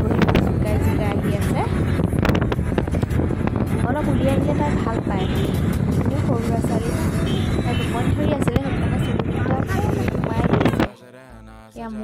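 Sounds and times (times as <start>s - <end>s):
car road noise: 0.0s - 10.9s
wind through car window: 0.0s - 10.9s
person talking: 7.6s - 12.0s.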